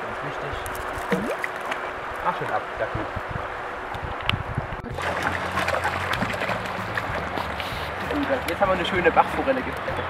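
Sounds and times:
stream rushing over stones: 0:00.7 - 0:02.8, 0:04.9 - 0:10.0.

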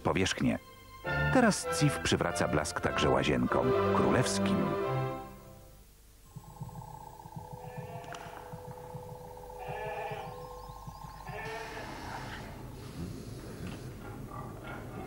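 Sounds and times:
electronic tones and low pulsing: 0:06.3 - 0:11.6
sheep bleating: 0:07.4 - 0:10.5, 0:11.2 - 0:12.4.

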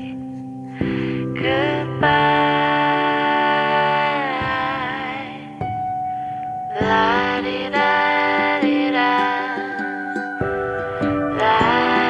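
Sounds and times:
background music with held chords: 0:00.0 - 0:12.0.

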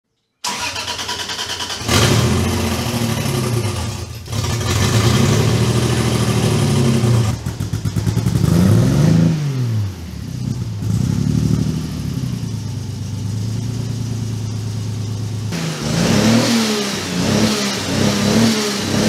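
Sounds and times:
car engine idling and revving: 0:00.5 - 0:19.0.

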